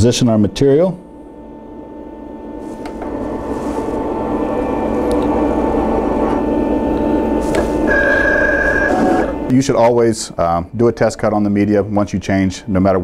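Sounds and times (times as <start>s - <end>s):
high whine: 0.0s - 11.8s
vinyl cutter carriage whirring: 2.5s - 9.6s.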